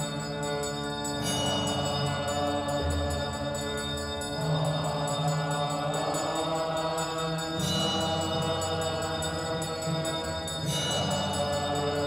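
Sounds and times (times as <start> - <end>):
small hand bell ringing: 0.0 - 12.0
sustained low drone: 0.0 - 12.0
voices chanting a hymn: 0.0 - 12.0.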